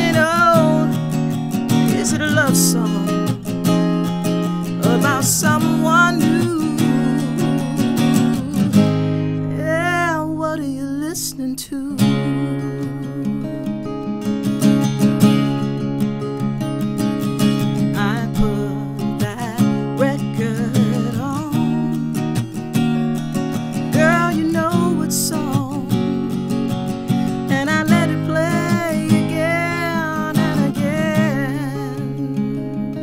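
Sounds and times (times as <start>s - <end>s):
woman singing: 0.0s - 14.0s, 17.8s - 33.0s
acoustic guitar strumming: 0.0s - 33.0s.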